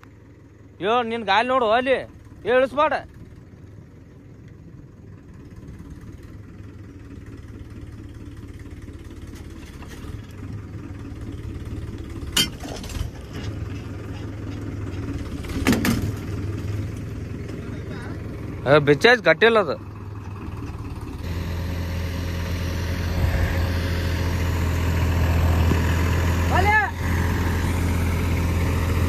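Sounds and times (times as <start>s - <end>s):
tractor diesel engine running: 0.0s - 29.0s
short loud engine burst: 21.2s - 28.1s.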